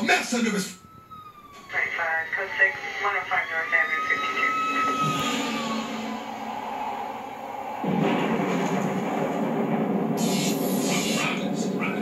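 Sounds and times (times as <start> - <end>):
siren wail: 0.1 - 8.5
steady rumbling noise: 1.6 - 12.0.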